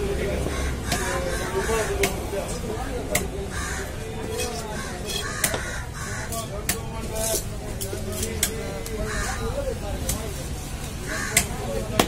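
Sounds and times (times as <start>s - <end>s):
chatter of voices: 0.0s - 12.0s
knife chopping fish on wooden block: 5.4s - 5.7s.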